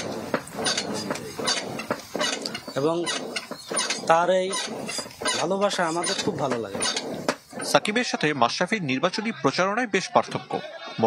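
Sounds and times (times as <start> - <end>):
chickens clucking: 0.0 - 8.0.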